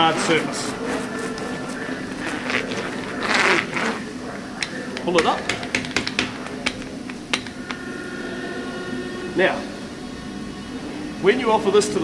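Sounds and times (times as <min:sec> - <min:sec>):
machine hum: 0:00.0 - 0:12.0.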